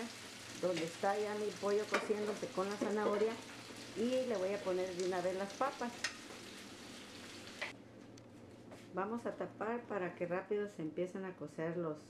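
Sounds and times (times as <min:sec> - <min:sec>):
vegetables sizzling in a pan: 0:00.0 - 0:07.7.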